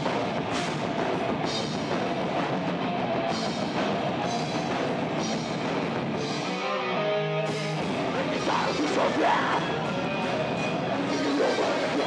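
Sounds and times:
distorted electric guitars: 0.0 - 12.0
drums: 0.0 - 12.0
metal band playing live: 0.0 - 12.0.

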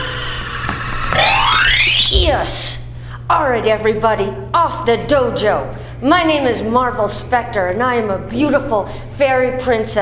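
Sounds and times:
electronic tone sinking and rising: 1.0 - 2.8.

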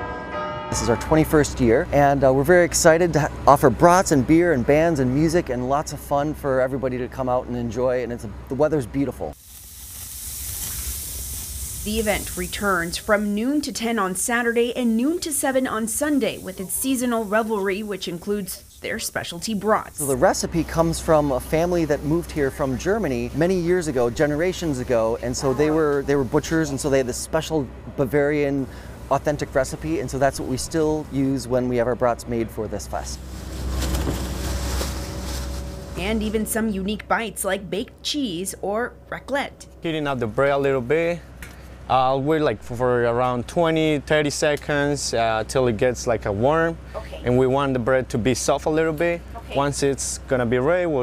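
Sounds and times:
sausages sizzling on grill: 9.3 - 31.8, 32.8 - 36.3
even hiss: 9.3 - 36.6
low rumble: 29.9 - 37.0.

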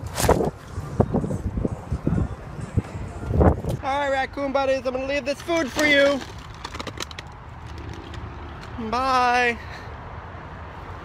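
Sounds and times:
man calling out: 8.8 - 9.8.

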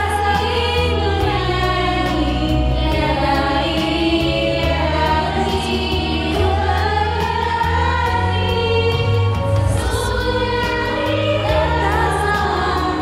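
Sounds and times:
choir singing slow song: 0.0 - 13.0
steady bass line: 0.0 - 13.0.

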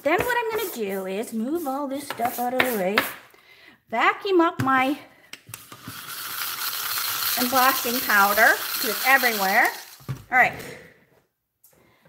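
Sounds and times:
handheld vacuum cleaner running: 5.7 - 10.0.

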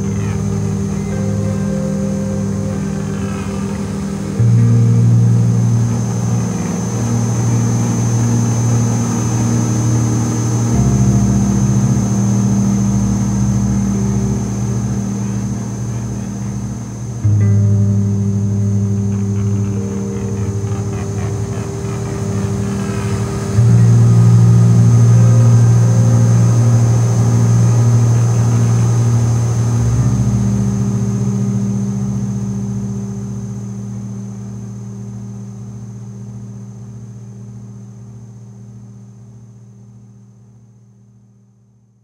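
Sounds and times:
thin high whine: 0.0 - 40.7
low droning tones: 0.0 - 40.9.

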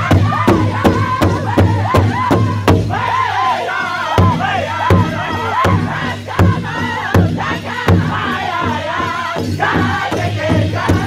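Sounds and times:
large hide drum beating: 0.0 - 3.1, 4.2 - 11.0
men and women singing: 0.0 - 11.0.

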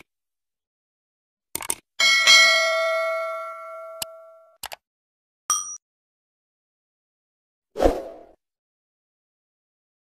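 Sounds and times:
notification bell ringing: 2.0 - 4.6.

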